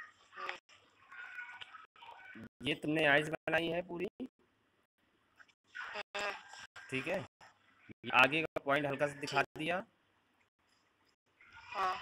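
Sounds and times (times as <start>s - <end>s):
person talking over video call: 2.4s - 4.3s, 6.8s - 7.3s, 8.0s - 9.9s.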